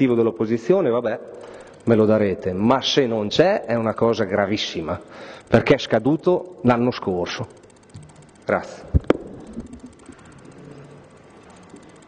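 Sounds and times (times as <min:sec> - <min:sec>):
hall room noise: 0:00.0 - 0:12.0
sharp clicks: 0:00.0 - 0:12.0.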